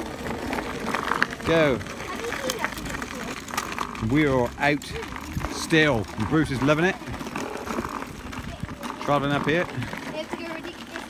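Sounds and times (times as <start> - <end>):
wheels rolling over gravel: 0.0 - 11.0
wind buffeting microphone: 4.0 - 10.3.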